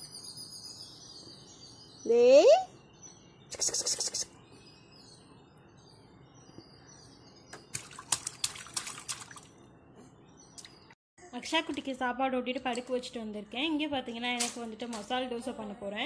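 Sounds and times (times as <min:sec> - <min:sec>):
faint bird chirps: 0:00.0 - 0:08.7
water splashing in plastic tub: 0:07.6 - 0:09.6.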